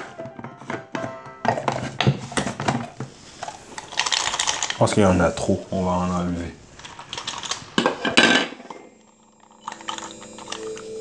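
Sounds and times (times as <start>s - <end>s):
soft background music: 0.0s - 1.8s, 9.0s - 11.0s.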